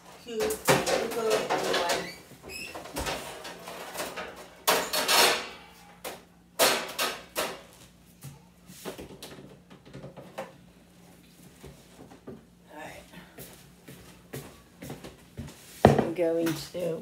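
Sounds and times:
cookware clattering: 0.4s - 2.1s.

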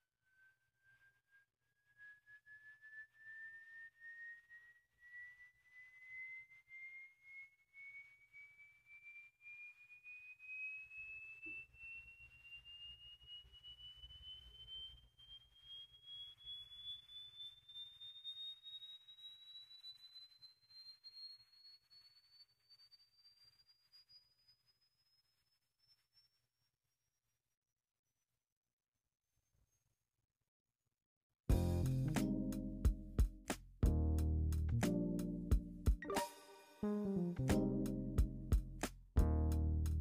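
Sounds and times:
sine tone sweeping upward: 0.0s - 27.2s.

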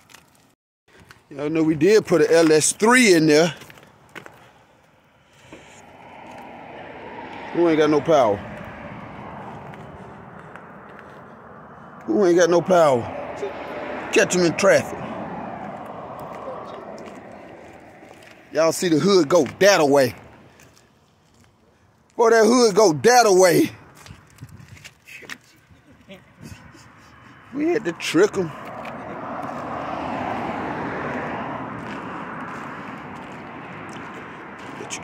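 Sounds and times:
vehicle rushing noise: 5.2s - 20.5s, 27.4s - 35.0s.

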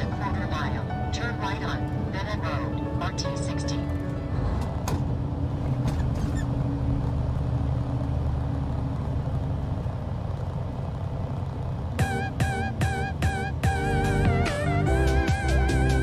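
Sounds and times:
diesel engine rumble: 0.0s - 16.0s
road noise: 0.0s - 16.0s.

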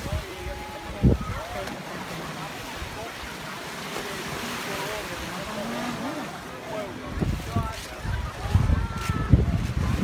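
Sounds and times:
gentle surf on shore: 0.0s - 10.0s.

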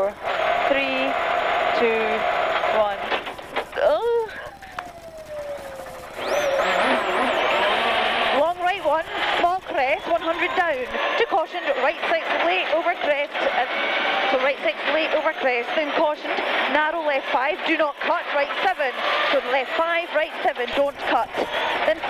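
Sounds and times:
rally car engine revving: 6.0s - 22.0s.

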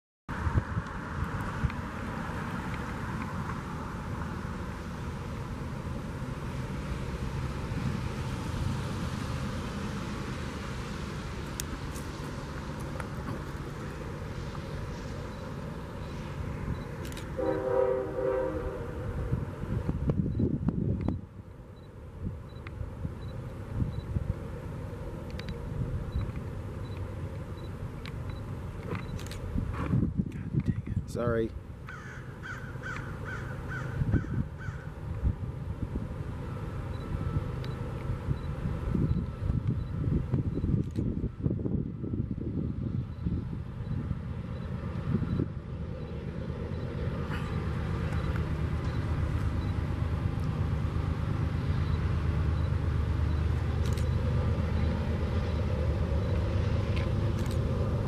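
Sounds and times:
freight train rumbling: 0.3s - 58.0s
train horn blast: 17.3s - 19.4s.

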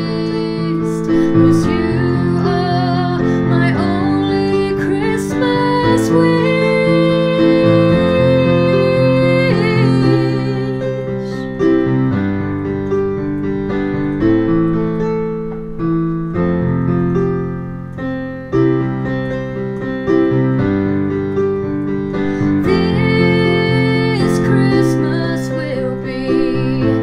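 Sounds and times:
digital piano chords: 0.0s - 27.0s.

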